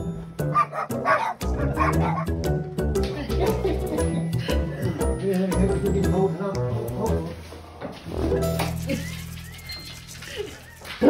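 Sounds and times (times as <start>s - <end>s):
background music: 0.0s - 11.0s
large dog barking and yipping: 0.5s - 2.4s.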